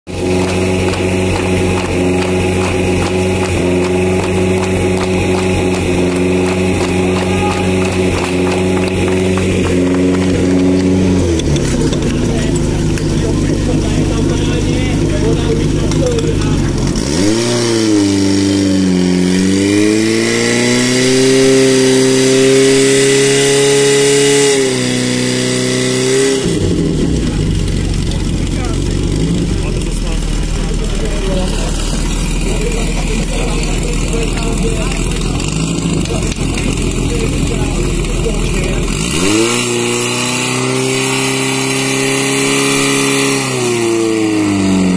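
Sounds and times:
pump engine idling and revving: 0:00.0 - 0:44.9.

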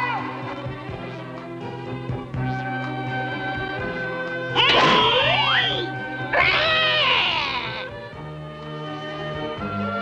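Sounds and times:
background music with held notes: 0:00.0 - 0:10.0
cartoon cat meowing: 0:04.6 - 0:07.9.

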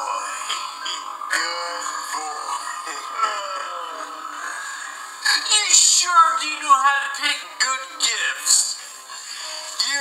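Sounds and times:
cartoon music from television: 0:00.0 - 0:10.0.

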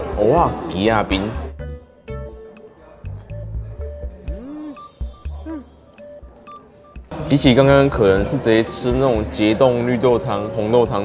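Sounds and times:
light electronic music: 0:00.0 - 0:11.0
pitch blip: 0:04.2 - 0:07.0
short beeps: 0:04.3 - 0:07.0.

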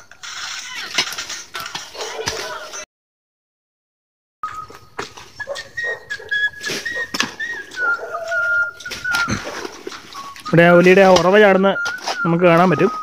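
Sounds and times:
thin high whistle-like tone: 0:04.4 - 0:13.0
hoe chopping and scraping soil: 0:04.5 - 0:13.0.

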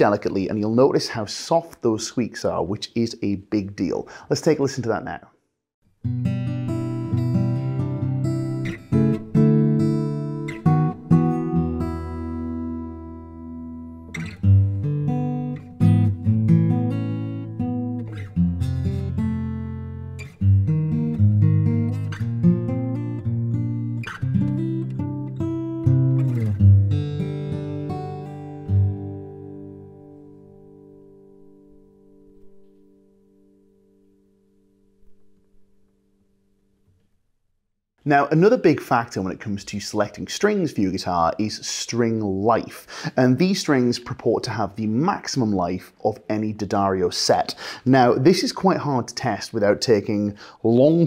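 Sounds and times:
fingerstyle acoustic guitar: 0:06.0 - 0:34.0.

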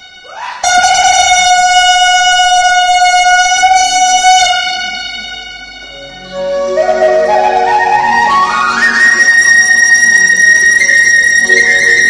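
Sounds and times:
wind instrument long note: 0:00.0 - 0:12.0.

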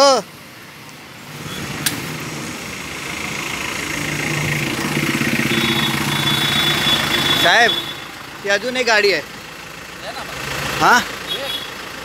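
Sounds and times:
truck engine idling: 0:00.3 - 0:12.0.

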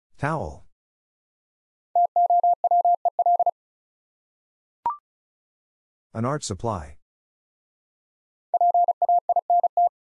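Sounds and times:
morse code beeping: 0:02.0 - 0:03.5, 0:08.6 - 0:09.9.

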